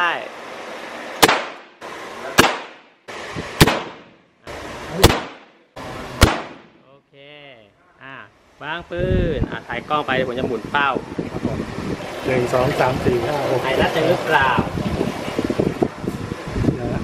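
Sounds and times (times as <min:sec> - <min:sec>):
revolver shots: 0:01.2 - 0:01.7, 0:02.4 - 0:02.9, 0:03.6 - 0:04.2, 0:05.0 - 0:05.5, 0:06.2 - 0:06.8.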